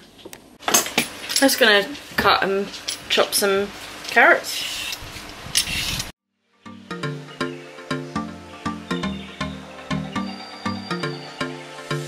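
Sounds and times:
vegetable peeler scraping carrot: 0:04.4 - 0:06.1
background music with steady beat: 0:06.6 - 0:12.0.

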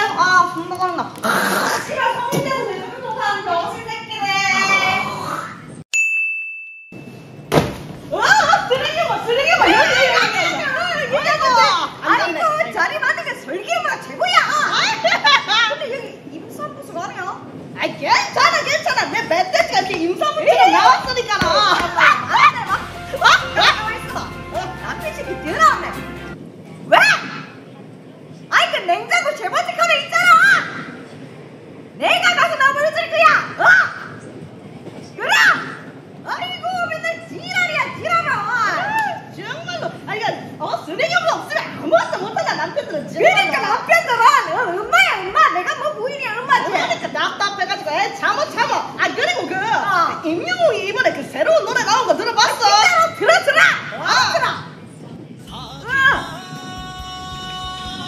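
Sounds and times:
women laughing and squealing: 0:20.5 - 0:23.9.

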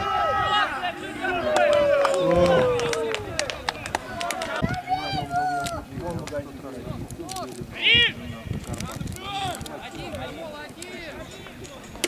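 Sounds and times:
players shouting short calls: 0:00.0 - 0:05.9.

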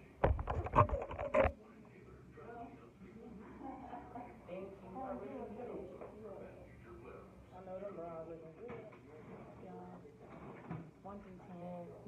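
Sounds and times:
handling noise on microphone: 0:00.2 - 0:01.6.

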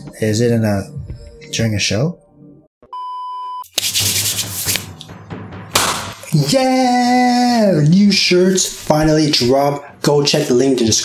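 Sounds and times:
high test-tone beep: 0:02.9 - 0:03.6.

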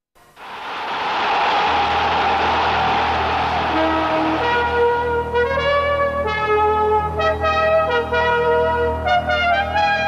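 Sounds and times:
rushing sound: 0:00.4 - 0:04.9.

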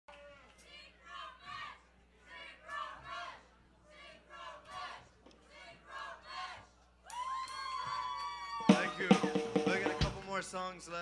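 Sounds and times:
live rock band playing: 0:08.7 - 0:10.2
drum kit hits: 0:08.7 - 0:10.3.

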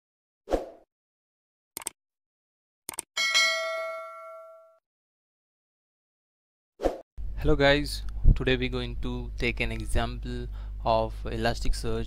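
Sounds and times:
bell ding: 0:03.2 - 0:04.8.

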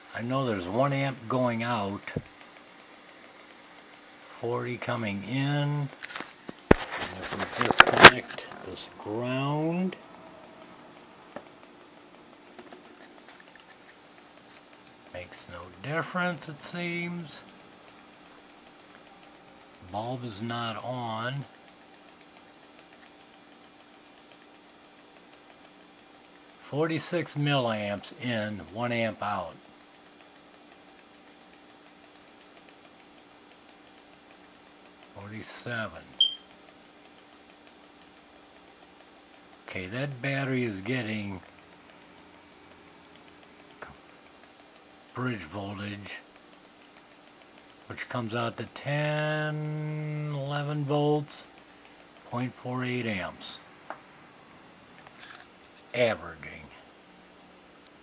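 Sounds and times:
faint electrical hum: 0:00.0 - 0:58.0
soft ticks: 0:01.1 - 0:05.7, 0:13.1 - 0:53.2
short high-pitched beep: 0:36.2 - 0:36.5.

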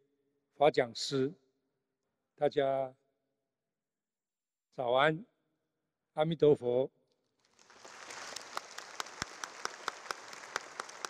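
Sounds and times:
audience applauding: 0:07.6 - 0:11.0
loud single claps: 0:07.8 - 0:11.0.

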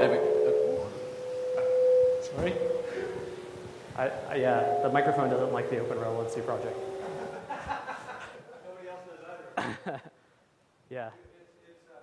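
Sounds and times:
microphone feedback ringing tone: 0:00.0 - 0:07.5.

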